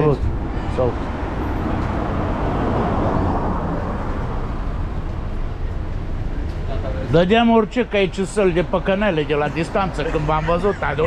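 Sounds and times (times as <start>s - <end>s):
street traffic: 0.0s - 11.0s
vehicle passing: 0.0s - 11.0s.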